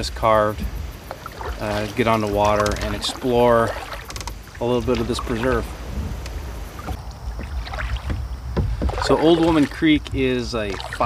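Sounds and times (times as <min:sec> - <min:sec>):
low steady rumble: 0:00.0 - 0:08.8
paddle splashing in water: 0:00.6 - 0:11.0.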